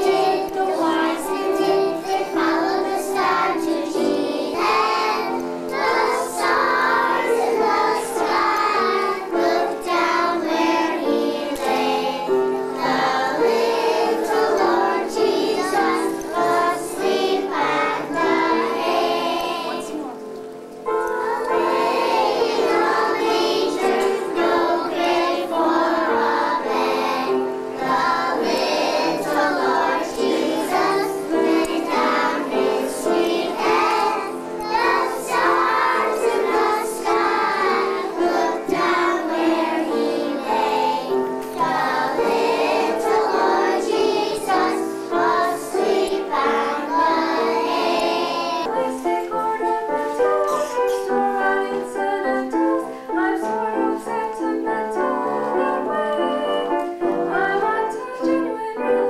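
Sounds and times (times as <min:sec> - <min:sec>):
children's choir singing: 0:00.0 - 0:59.0.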